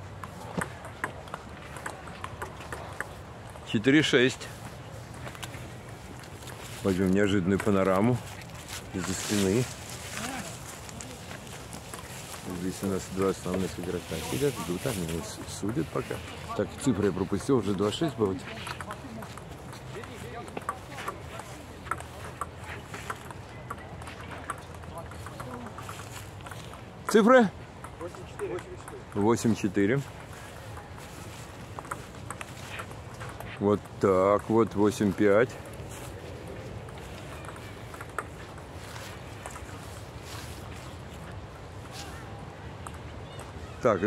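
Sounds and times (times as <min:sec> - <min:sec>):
faint voices: 0:00.0 - 0:44.0.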